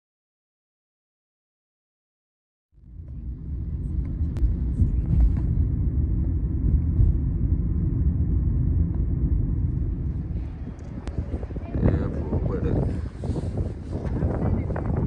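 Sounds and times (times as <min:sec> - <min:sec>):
car road and engine rumble: 0:02.8 - 0:15.0.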